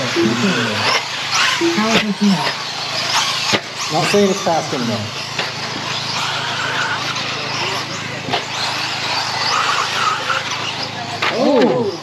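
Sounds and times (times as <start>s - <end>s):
rc cars motors and tyres hissing: 0.0s - 12.0s.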